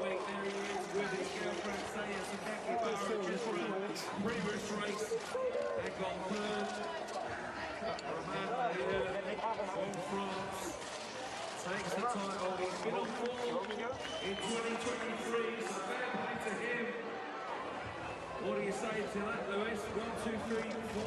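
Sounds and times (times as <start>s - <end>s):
crowd voices talking: 0.0s - 21.0s.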